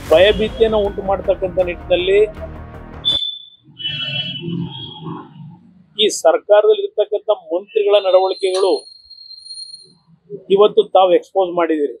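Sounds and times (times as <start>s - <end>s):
man speaking: 0.0s - 2.6s, 6.0s - 8.8s, 10.3s - 12.0s
background music: 0.0s - 3.2s
high whistle-like tone: 3.0s - 5.3s, 8.1s - 10.0s.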